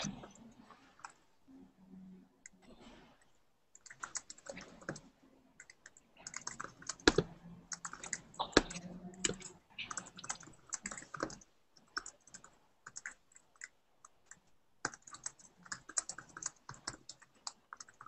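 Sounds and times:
typing on a computer keyboard: 3.8 - 18.0.

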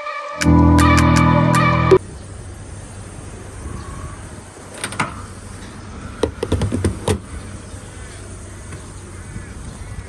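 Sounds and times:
car engines and traffic rumble: 0.5 - 10.0.

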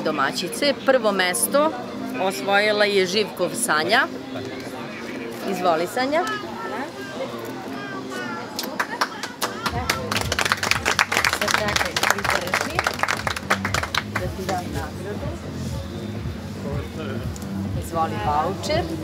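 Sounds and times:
music playing: 0.0 - 19.0
small crowd clapping: 8.5 - 14.8.

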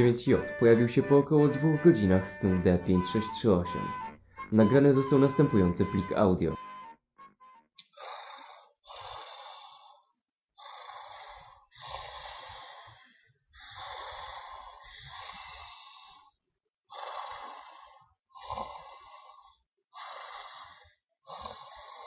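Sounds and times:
man breathing heavily: 8.9 - 10.1, 11.0 - 16.4.

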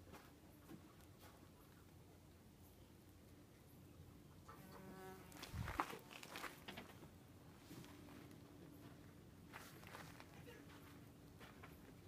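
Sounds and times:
bee buzzing: 4.5 - 5.4.

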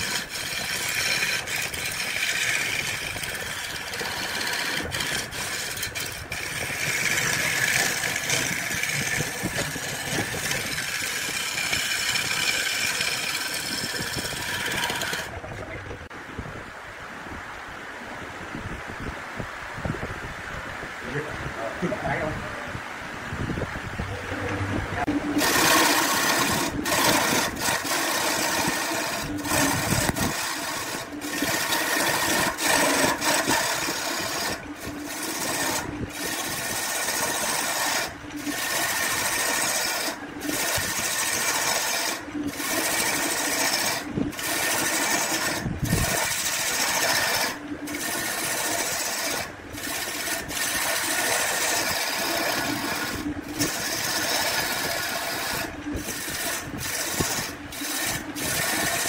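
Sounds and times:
turning tool scraping wood: 0.0 - 16.1, 24.3 - 59.0
wood lathe running: 0.0 - 16.1, 24.3 - 59.0.

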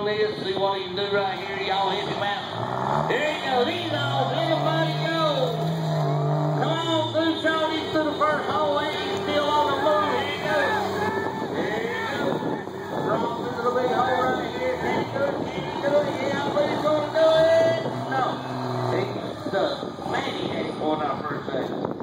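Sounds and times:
truck engine running hard: 0.0 - 22.0
onlookers shouting: 1.6 - 21.2.

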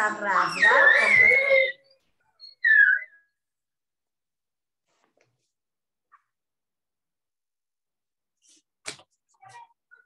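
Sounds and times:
woman's voice: 0.0 - 1.6.

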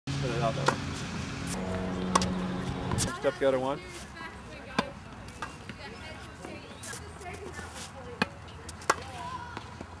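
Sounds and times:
tennis ball impacts: 1.5 - 3.1, 4.7 - 5.8, 8.2 - 9.9.

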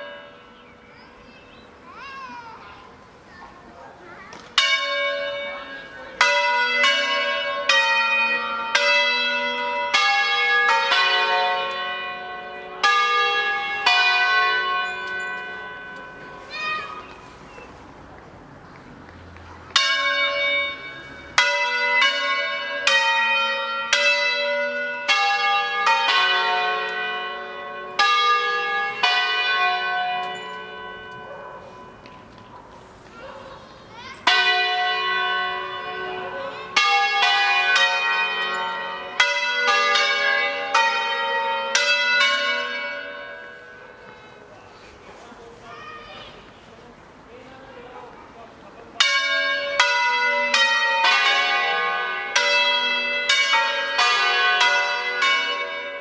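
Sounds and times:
church bells pealing: 0.0 - 17.8, 19.6 - 46.6, 47.5 - 56.0.

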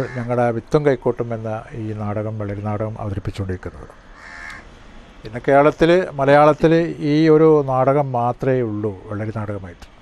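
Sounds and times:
bird cawing: 0.0 - 0.4, 3.8 - 5.1
man speaking: 0.0 - 4.0, 5.2 - 10.0.

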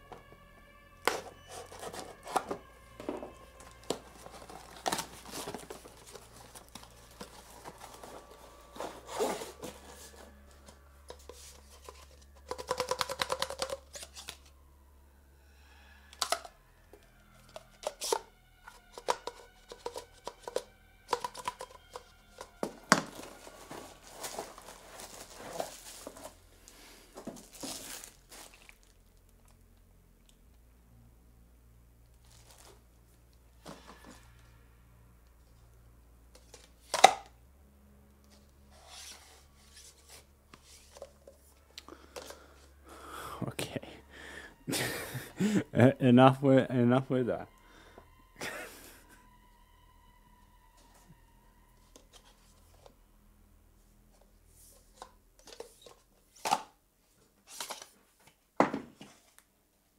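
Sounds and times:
packaging rustling and crinkling: 1.1 - 14.5, 21.2 - 29.6, 32.2 - 32.8
plastic parts knocking and clicking: 11.1 - 14.3, 16.2 - 16.5, 18.9 - 23.2.

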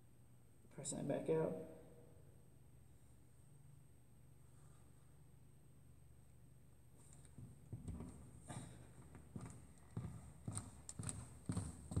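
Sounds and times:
footsteps on hardwood floor: 7.1 - 12.0.

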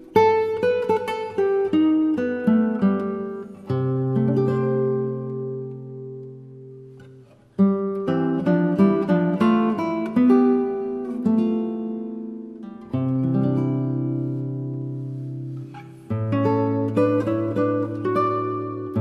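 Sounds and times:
slow acoustic guitar instrumental: 0.0 - 19.0.

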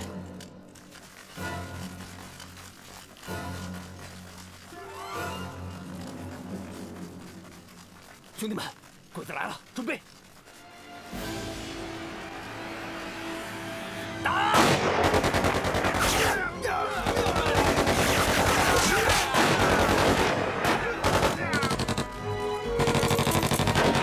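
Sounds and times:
tense film score: 0.0 - 24.0
rapid gunfire: 14.6 - 22.2, 22.8 - 24.0.

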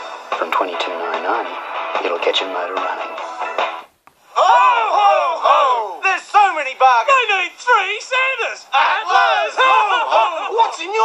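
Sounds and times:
men shouting together: 4.4 - 6.2, 7.1 - 11.0.

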